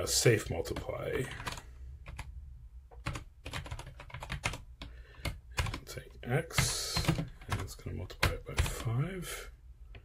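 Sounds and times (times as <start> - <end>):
computer keyboard keystrokes: 3.0 - 5.8, 6.6 - 8.9.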